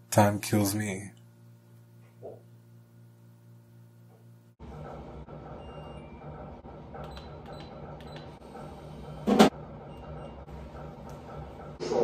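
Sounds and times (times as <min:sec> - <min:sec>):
vending machine hum: 0:00.0 - 0:12.0.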